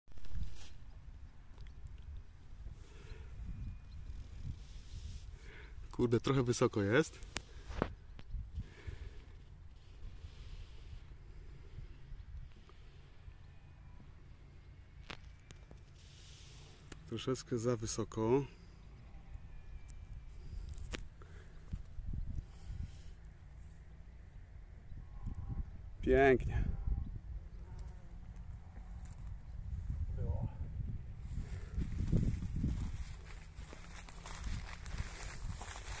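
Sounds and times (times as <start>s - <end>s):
footsteps crunching dry stubble: 0.1s - 1.1s, 31.2s - 36.0s
wind buffeting microphone: 1.8s - 5.3s, 20.4s - 23.1s, 24.9s - 27.6s, 28.3s - 36.0s.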